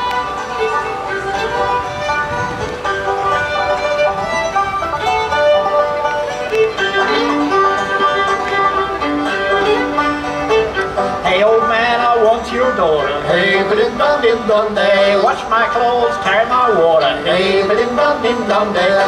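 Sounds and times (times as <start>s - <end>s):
acoustic folk music: 0.0s - 19.0s
people singing: 13.1s - 19.0s.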